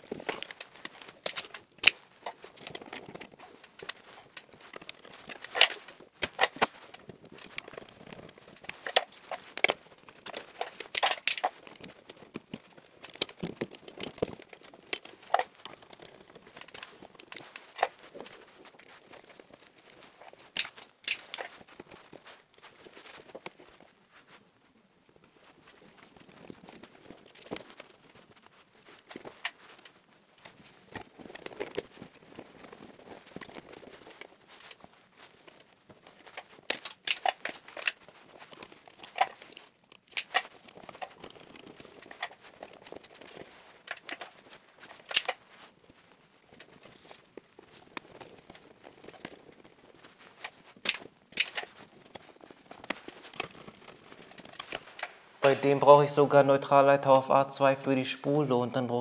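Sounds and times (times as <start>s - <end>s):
electrical cable clicks and rustles: 0.0s - 55.8s.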